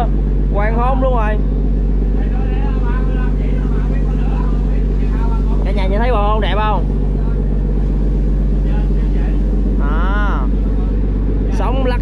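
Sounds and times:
boat diesel engine droning: 0.0s - 12.0s.

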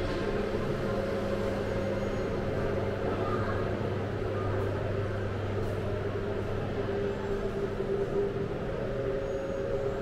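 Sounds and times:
low hum of machinery: 0.0s - 10.0s.

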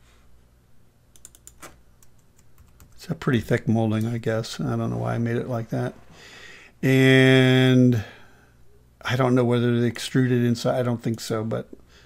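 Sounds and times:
faint keyboard typing: 1.1s - 3.2s.

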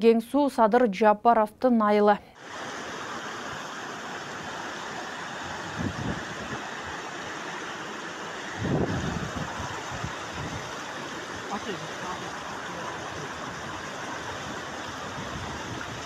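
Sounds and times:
floodwater rushing: 2.4s - 16.0s.

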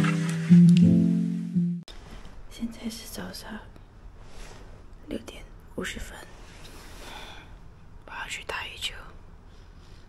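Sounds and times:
woman whispering: 5.1s - 6.3s, 8.0s - 9.3s.

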